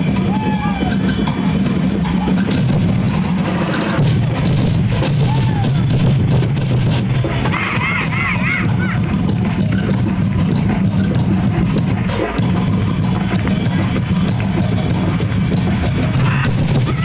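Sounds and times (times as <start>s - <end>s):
drum-driven music: 0.0s - 17.0s.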